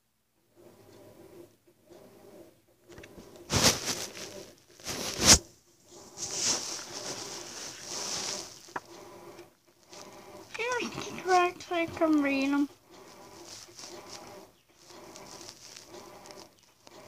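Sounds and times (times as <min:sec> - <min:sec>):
paper rustling: 0:03.5 - 0:05.5, 0:06.2 - 0:08.8, 0:13.1 - 0:17.0.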